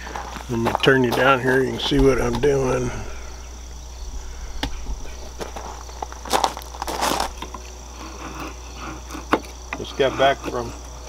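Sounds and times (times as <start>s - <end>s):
knife scraping wood: 6.9s - 11.0s.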